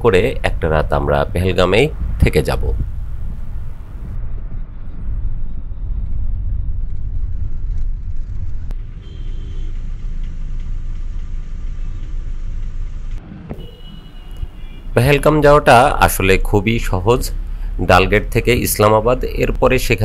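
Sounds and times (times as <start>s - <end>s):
car engine and tyre rumble: 0.0s - 20.0s.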